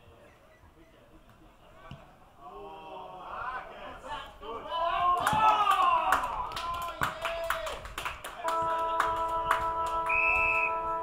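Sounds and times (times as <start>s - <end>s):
held chord: 8.5s - 11.0s
higher note: 8.5s - 11.0s.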